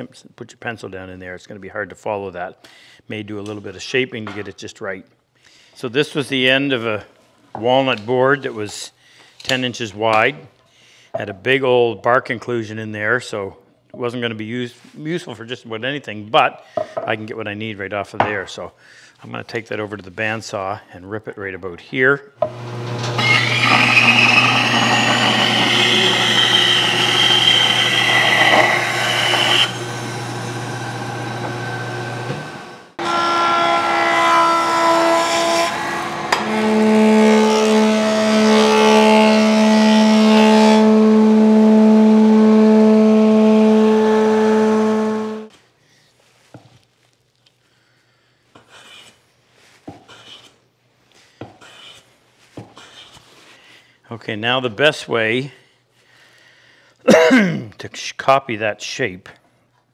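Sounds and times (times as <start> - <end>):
bandsaw cutting wood: 22.4 - 45.5
thickness planer humming: 22.4 - 45.5.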